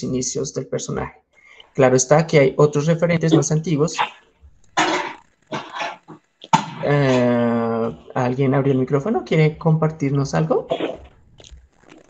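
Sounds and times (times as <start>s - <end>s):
dog barking: 3.3s - 4.2s.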